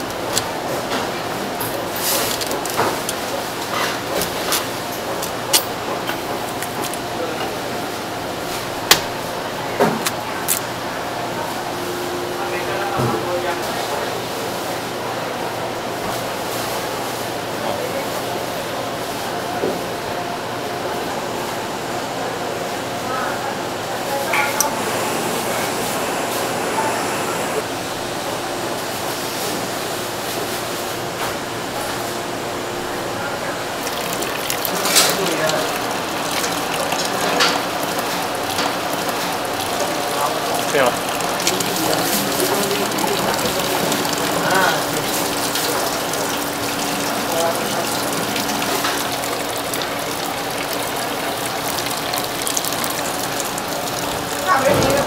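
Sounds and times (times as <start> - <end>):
indistinct background voices: 23.6 - 27.7
running tap water: 24.4 - 27.7, 33.6 - 55.0.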